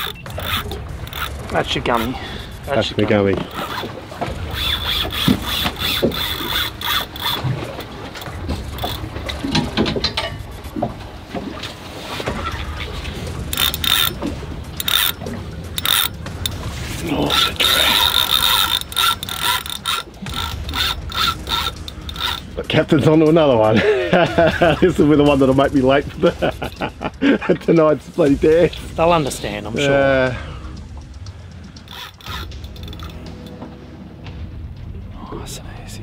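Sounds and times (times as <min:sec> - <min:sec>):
fishing reel whirring and clicking: 0:00.0 - 0:09.8, 0:13.3 - 0:22.6, 0:31.8 - 0:33.5.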